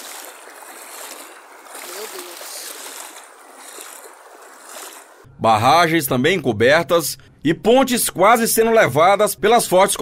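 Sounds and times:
stream rushing: 0.0 - 5.3.

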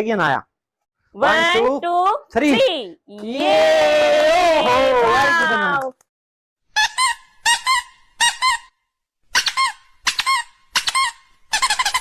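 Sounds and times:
high-pitched squeaky calls: 6.8 - 12.0.

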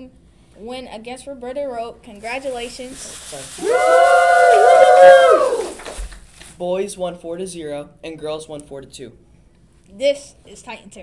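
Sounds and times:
voices cheering: 3.6 - 6.0.

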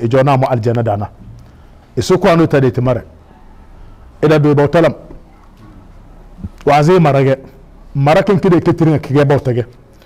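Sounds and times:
man speaking: 0.0 - 1.2, 1.9 - 3.2, 4.2 - 9.8.

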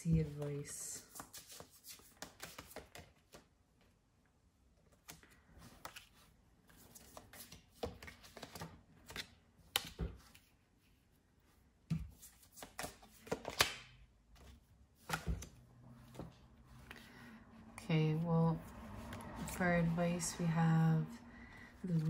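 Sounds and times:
cards slapping on a table: 1.1 - 3.4, 11.9 - 15.5.

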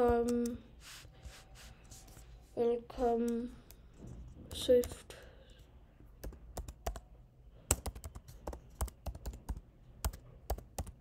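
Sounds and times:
computer keyboard typing: 6.2 - 11.0.

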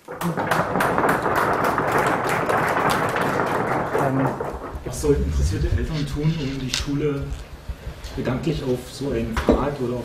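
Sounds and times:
audience applause: 0.1 - 4.6.

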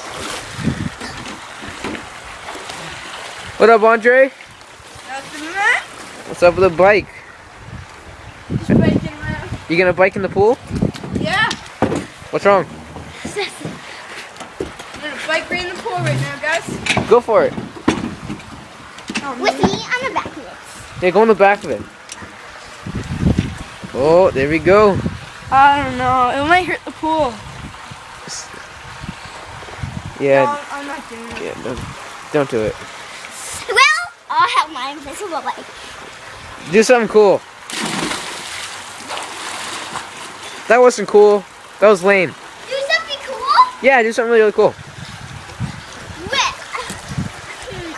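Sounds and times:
splash into pool: 0.0 - 3.6, 37.6 - 40.7
water churning and sloshing: 0.0 - 47.9
children talking indistinctly: 5.0 - 6.0, 11.1 - 11.7, 12.4 - 17.0, 19.0 - 21.0, 33.4 - 35.8, 42.6 - 43.9, 46.0 - 47.9.

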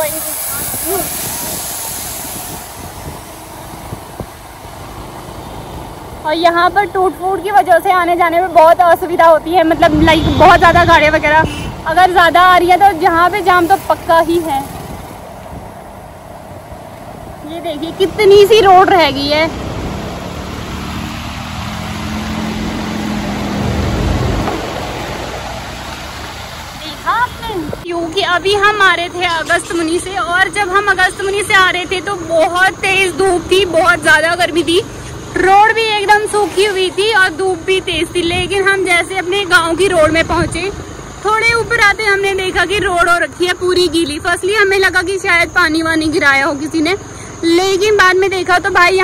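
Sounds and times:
high hiss: 0.0 - 5.6
low engine hum: 0.0 - 49.0
wind and road noise: 0.0 - 49.0.

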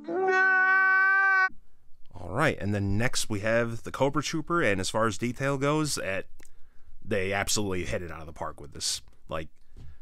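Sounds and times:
man wailing a held note: 0.0 - 1.5.

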